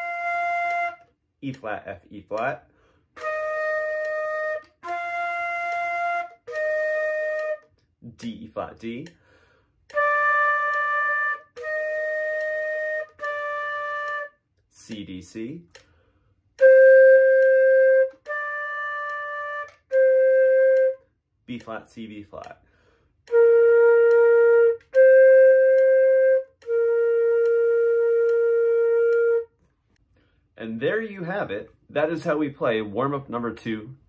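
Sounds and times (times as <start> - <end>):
flute held notes: 0.0 - 1.1, 3.2 - 7.8, 9.9 - 14.4, 16.6 - 21.1, 23.3 - 29.6
flute player breaths: 2.7 - 3.2, 9.2 - 9.9, 15.8 - 16.5, 22.6 - 23.2, 30.0 - 30.6.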